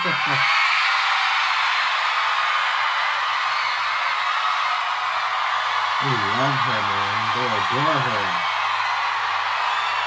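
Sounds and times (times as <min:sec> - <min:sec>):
crowd screaming: 0:00.0 - 0:10.0.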